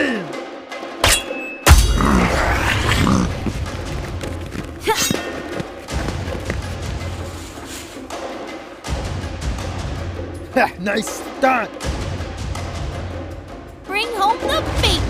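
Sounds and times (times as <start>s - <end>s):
dramatic background music: 0.0s - 15.0s
metal strike ringing: 1.0s - 2.3s.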